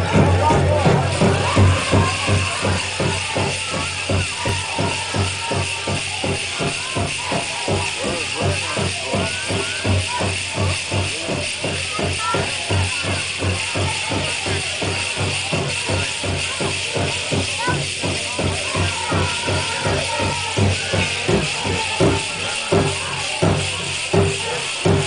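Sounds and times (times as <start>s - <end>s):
big drum beat: 0.0s - 25.0s
drum group singing: 0.0s - 25.0s.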